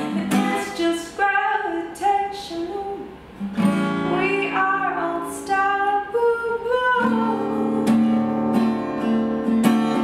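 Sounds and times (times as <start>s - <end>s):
woman singing: 0.0s - 3.2s, 3.9s - 8.1s
strummed acoustic guitar: 0.0s - 10.0s.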